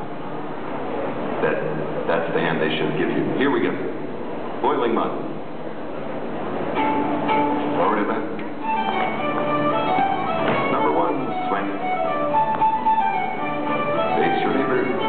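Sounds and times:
country dance music: 8.6s - 15.0s.

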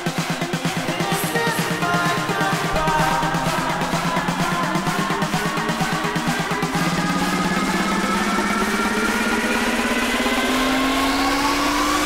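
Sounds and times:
rising synth tone: 2.2s - 12.0s.

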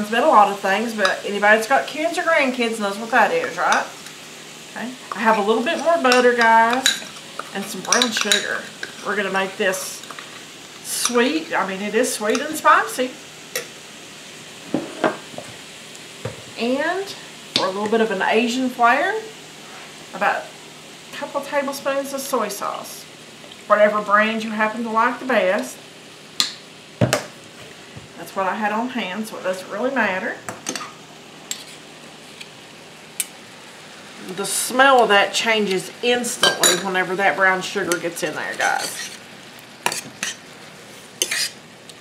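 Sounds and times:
faint steady hiss: 0.0s - 42.0s
pan sizzling: 0.0s - 42.0s
utensils knocking on skillet: 14.7s - 15.6s, 16.2s - 16.6s, 26.4s - 27.4s, 36.4s - 36.9s.

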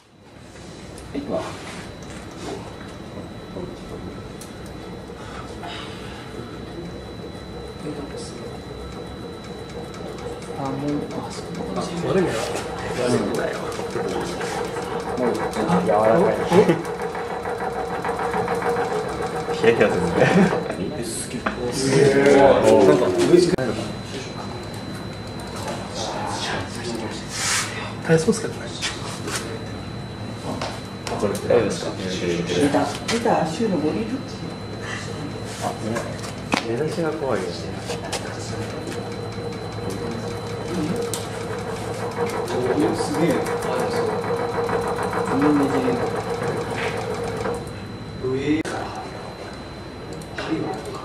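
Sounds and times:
shaking table mechanical hum: 0.0s - 51.0s
people laughing: 20.0s - 20.8s
fast dense rattle: 38.6s - 47.6s.

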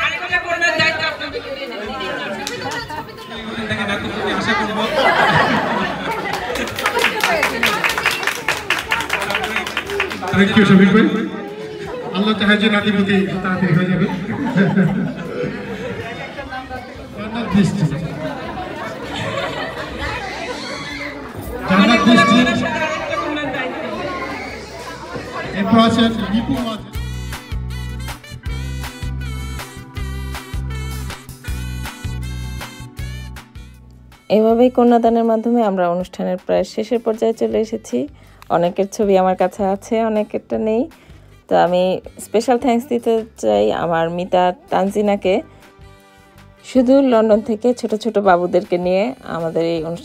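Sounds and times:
indistinct chatter: 0.0s - 27.0s.

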